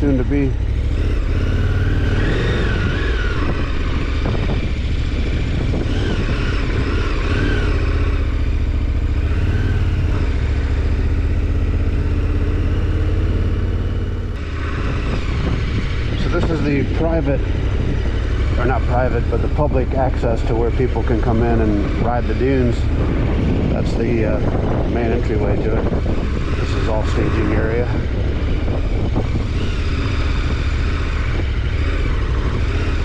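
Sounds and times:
motorcycle engine running: 0.0s - 33.0s.

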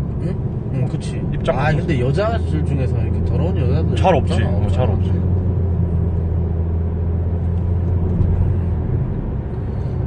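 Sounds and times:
car engine and road drone: 0.0s - 10.0s.

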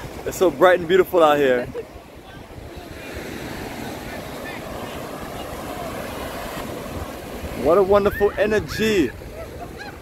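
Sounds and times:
beach wash noise: 0.0s - 10.0s.

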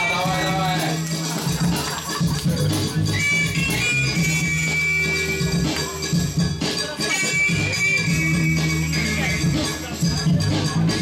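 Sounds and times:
dance music over speakers: 0.0s - 11.0s.

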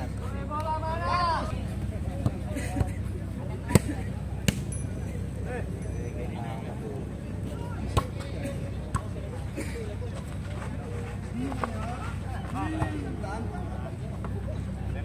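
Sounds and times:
volleyball slaps: 3.7s - 4.7s.

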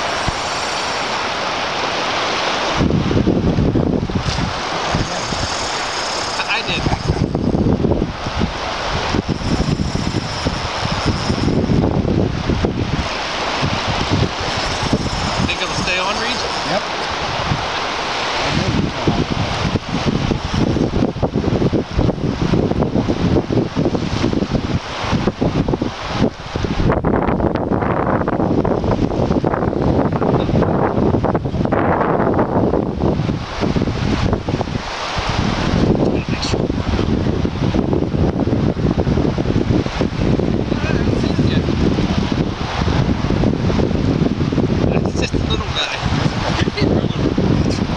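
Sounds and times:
wind buffeting microphone: 0.0s - 47.9s.

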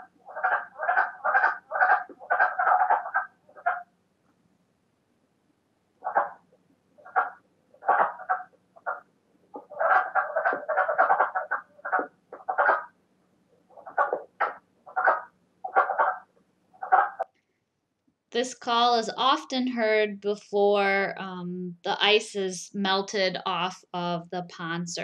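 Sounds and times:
frogs croaking: 0.0s - 3.9s, 6.0s - 6.4s, 7.0s - 13.0s, 13.7s - 17.3s.

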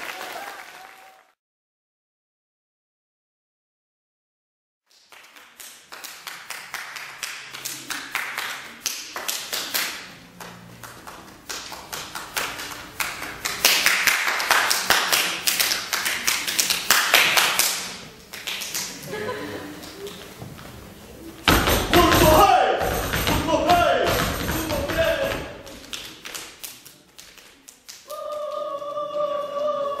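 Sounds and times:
hand claps and slaps: 4.9s - 19.0s, 25.6s - 28.7s.

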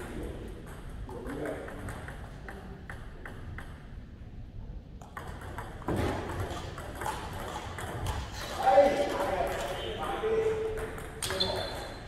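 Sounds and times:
table tennis ball bouncing on table: 0.0s - 4.0s, 5.0s - 11.9s
table tennis rally clicks: 0.6s - 4.0s, 5.0s - 12.0s.

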